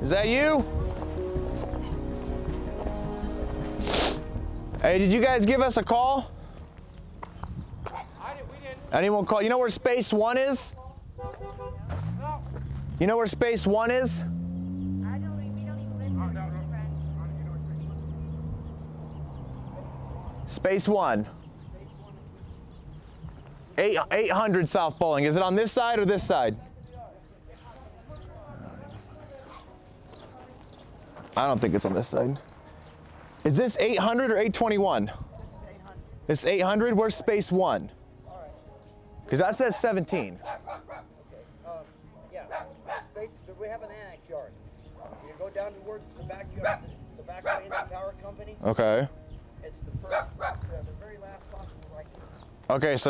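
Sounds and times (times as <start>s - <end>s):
dog barking: 29.5s - 29.8s, 40.4s - 41.1s, 42.3s - 43.2s, 46.6s - 48.0s, 50.1s - 50.7s.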